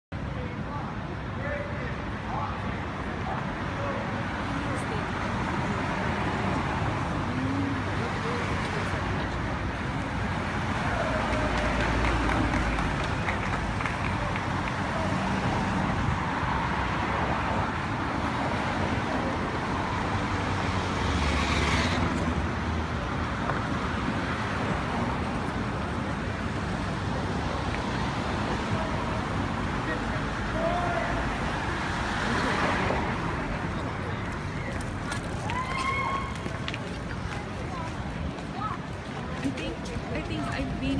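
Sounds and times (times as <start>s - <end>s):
faint voices of passers-by: 0.2s - 40.9s
cars driving past: 1.8s - 40.9s.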